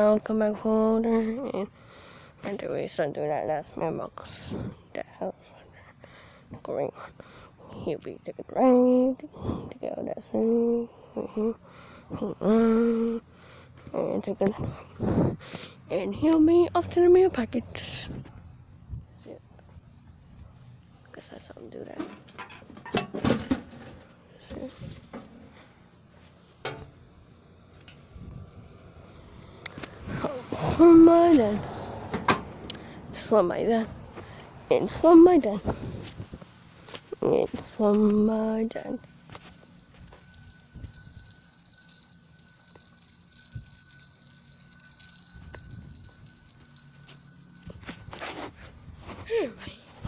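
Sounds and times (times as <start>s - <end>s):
faint steady hum: 0.0s - 50.0s.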